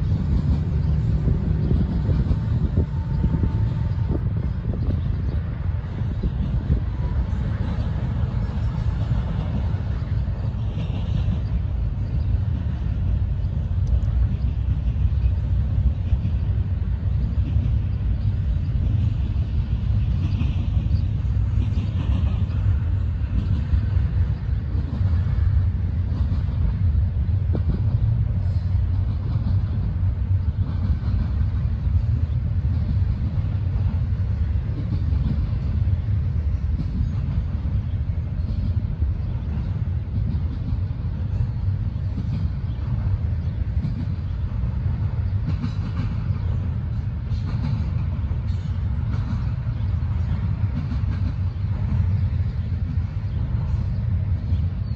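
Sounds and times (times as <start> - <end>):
distant freight train rumbling: 0.0 - 54.9.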